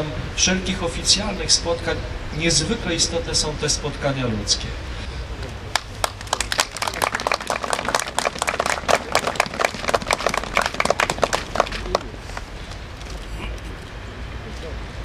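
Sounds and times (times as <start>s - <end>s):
low wind rumble: 0.0s - 15.0s
small crowd applauding: 5.7s - 12.2s.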